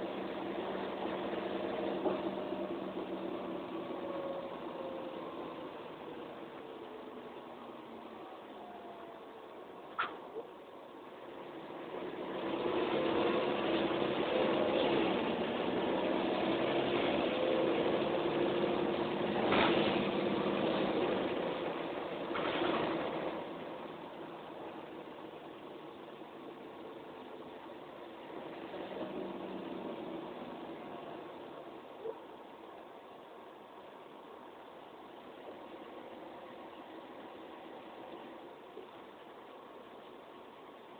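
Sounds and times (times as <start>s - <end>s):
bus engine accelerating: 0.0s - 9.9s, 10.7s - 40.9s.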